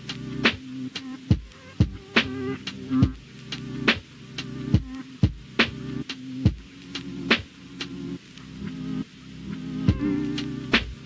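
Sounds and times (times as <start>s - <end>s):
slow hip-hop drum beat: 0.0s - 8.0s, 9.8s - 11.0s.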